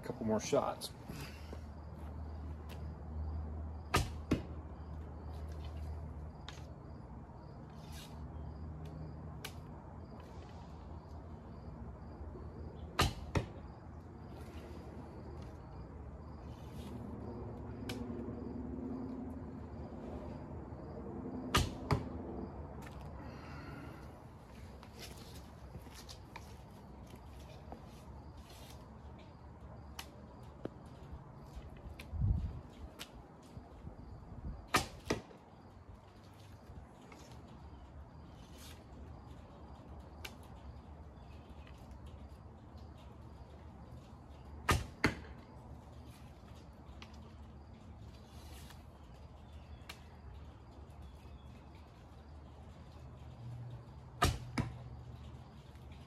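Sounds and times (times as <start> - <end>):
arrow striking target: 3.9 - 4.5, 13.0 - 13.6, 21.5 - 22.2, 34.7 - 35.3, 44.7 - 45.3, 54.2 - 54.8.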